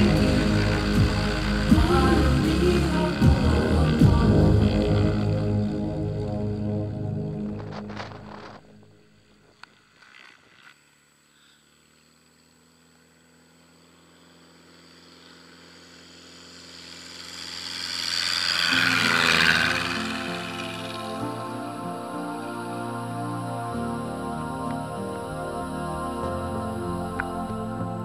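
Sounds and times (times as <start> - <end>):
music: 0.0 - 8.9, 18.7 - 28.0
light aircraft propeller engine: 0.0 - 28.0.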